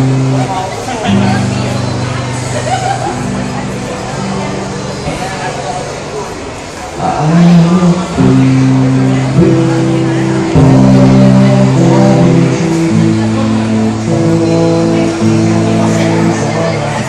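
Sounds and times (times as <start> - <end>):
electric guitar through amplifier: 0.0 - 17.0.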